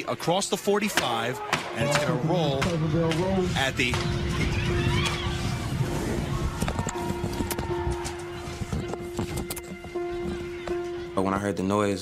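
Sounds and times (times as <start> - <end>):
crowd shouting: 1.2 - 2.6, 4.2 - 8.7.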